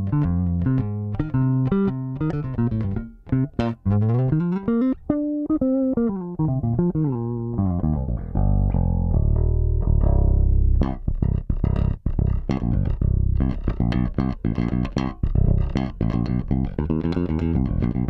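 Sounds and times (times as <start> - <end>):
electric bass played fingerstyle: 0.0 - 18.0.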